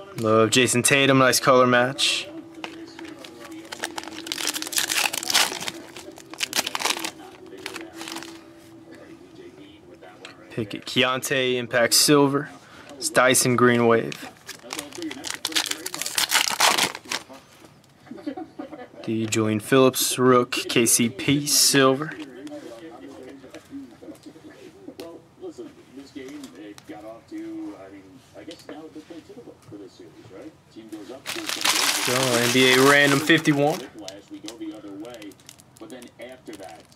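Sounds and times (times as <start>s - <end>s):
muffled television talk: 0.0s - 36.9s
cards rustling: 2.5s - 8.5s, 14.0s - 17.4s, 31.0s - 36.9s
foil pack tearing and crinkling: 2.6s - 8.4s, 14.2s - 17.4s, 31.3s - 36.9s.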